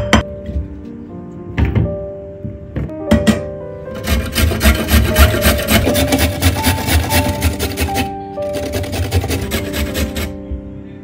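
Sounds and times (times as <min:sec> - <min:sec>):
carrot grating on metal grater: 0:04.0 - 0:10.4.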